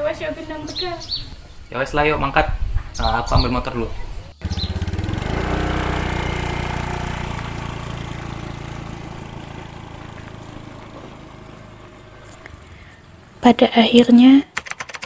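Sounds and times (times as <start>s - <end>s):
small motorcycle engine running: 4.4s - 13.6s.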